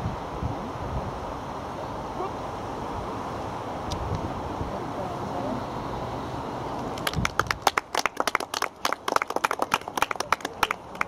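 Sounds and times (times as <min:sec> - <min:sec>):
scattered hand clapping: 0:06.9 - 0:11.0.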